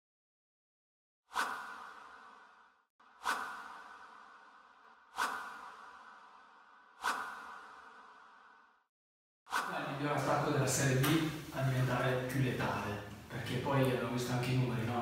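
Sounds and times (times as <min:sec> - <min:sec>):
whoosh swipe sound effects: 0:01.3 - 0:02.6, 0:03.2 - 0:08.2, 0:09.5 - 0:09.9.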